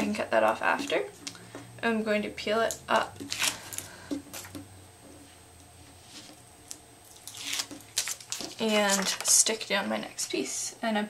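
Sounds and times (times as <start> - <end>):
tape peeling: 3.2 - 4.6, 6.7 - 9.5.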